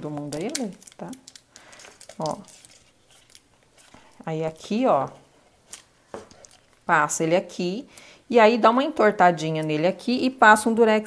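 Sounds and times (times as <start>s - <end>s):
adhesive tape crinkling: 0.0s - 7.6s.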